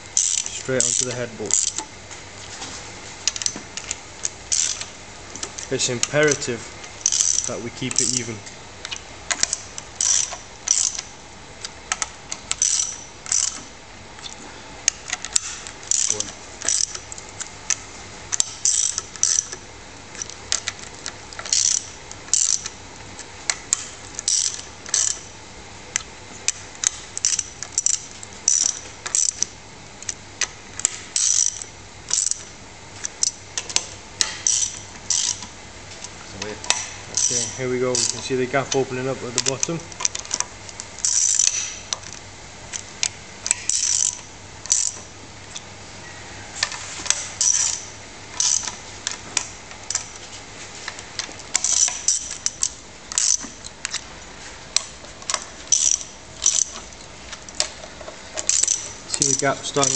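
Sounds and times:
socket ratchet clicking: 0:00.2 - 0:01.9, 0:03.3 - 0:13.7, 0:14.9 - 0:19.6, 0:20.2 - 0:22.8, 0:23.5 - 0:25.3, 0:26.0 - 0:35.5, 0:36.6 - 0:45.1, 0:47.4 - 0:50.2, 0:51.2 - 0:54.0, 0:54.8 - 0:57.8, 0:58.4 - 0:59.9.

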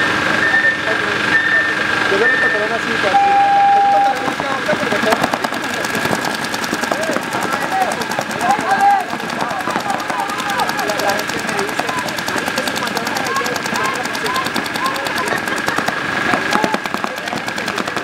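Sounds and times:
held tone: 0:00.0 - 0:04.4
paintball markers firing: 0:04.7 - 0:18.0
people shouting: 0:06.8 - 0:18.0.

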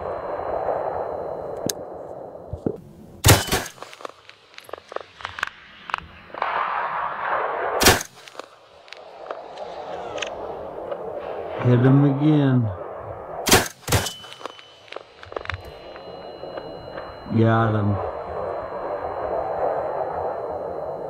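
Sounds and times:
rifle shots: 0:03.2 - 0:04.8, 0:06.3 - 0:11.0, 0:13.4 - 0:15.2.

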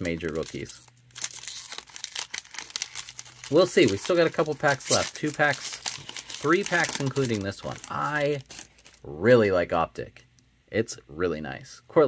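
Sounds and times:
foil wrapper crinkling and tearing: 0:00.0 - 0:09.1.

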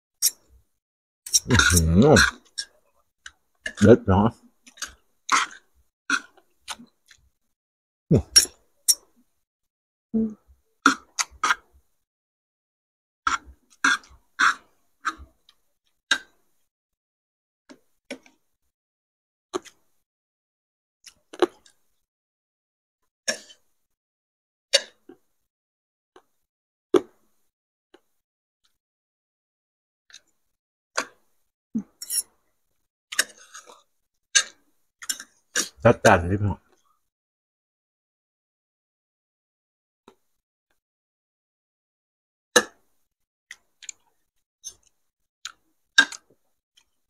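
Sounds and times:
people chewing: 0:01.3 - 0:02.3.

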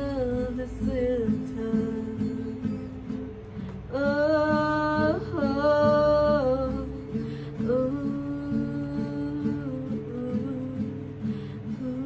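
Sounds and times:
strummed acoustic guitar: 0:00.0 - 0:12.0
woman singing: 0:00.0 - 0:12.0.

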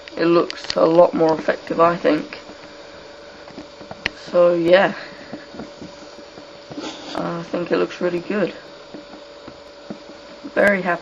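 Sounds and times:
background hiss: 0:00.0 - 0:11.0
faint hum: 0:00.0 - 0:11.0
breath: 0:05.0 - 0:05.5.

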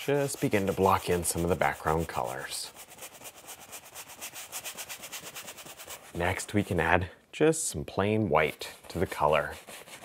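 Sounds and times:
brush scrubbing paint on canvas: 0:00.0 - 0:07.0, 0:08.4 - 0:10.0.

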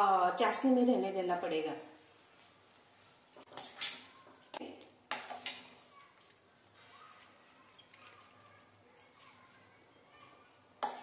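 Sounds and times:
spoon scraping and knocking on pan: 0:03.4 - 0:04.1, 0:05.1 - 0:05.9, 0:10.8 - 0:11.0.

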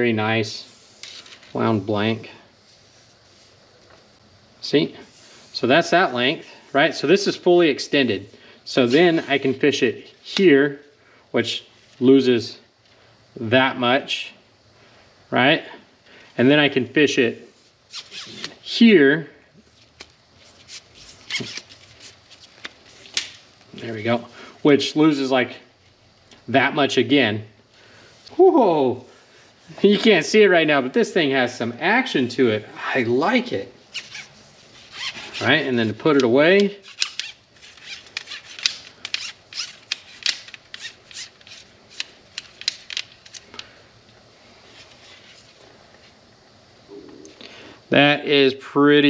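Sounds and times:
rod sections rubbing together: 0:17.4 - 0:18.6, 0:19.7 - 0:23.3, 0:33.9 - 0:43.5, 0:44.6 - 0:45.6.

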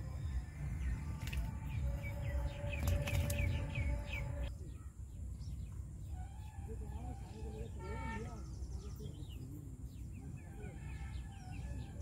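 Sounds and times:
steady low rumble: 0:00.0 - 0:06.1
bird chirping: 0:00.0 - 0:12.0.

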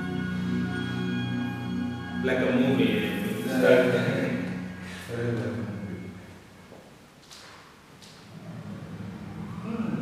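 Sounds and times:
siren wailing: 0:08.9 - 0:10.0.

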